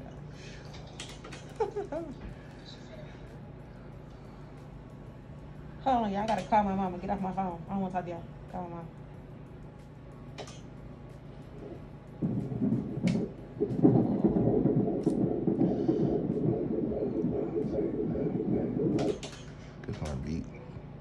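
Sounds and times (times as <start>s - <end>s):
fetal heartbeat on doppler speaker: 11.5s - 19.4s.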